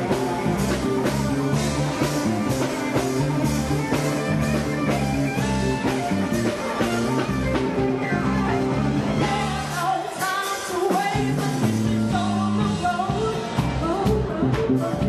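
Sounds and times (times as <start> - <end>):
bass guitar: 0.0 - 15.0
electric guitar: 0.0 - 15.0
steady drum beat: 0.0 - 15.0.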